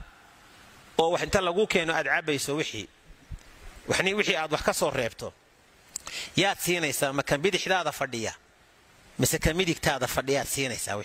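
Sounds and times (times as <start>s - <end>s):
man speaking into headset microphone: 1.0s - 2.9s, 3.9s - 5.4s, 6.4s - 8.4s, 9.2s - 11.0s.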